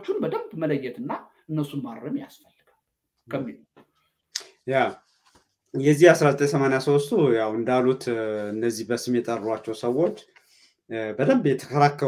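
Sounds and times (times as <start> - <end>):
man speaking: 0.0 - 2.4, 3.3 - 3.7, 4.4 - 5.1, 5.8 - 10.3, 10.9 - 12.0.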